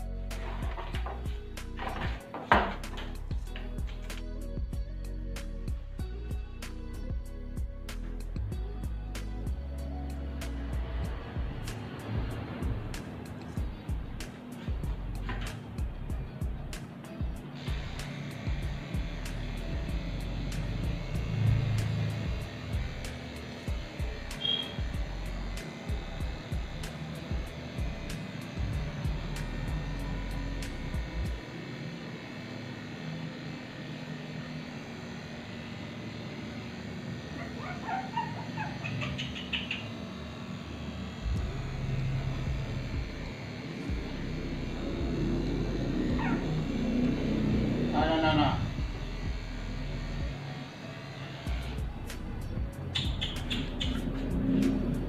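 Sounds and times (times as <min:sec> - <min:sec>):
electric clippers running: 0:00.0 - 0:55.0
puppy whining: 0:37.4 - 0:39.7.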